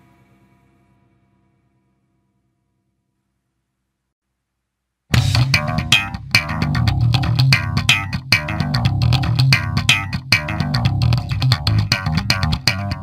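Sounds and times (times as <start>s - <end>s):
loud metal song: 5.2s - 13.0s.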